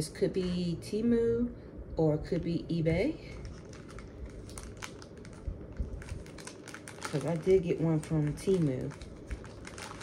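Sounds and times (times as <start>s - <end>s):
package crinkling and rustling: 3.2s - 10.0s.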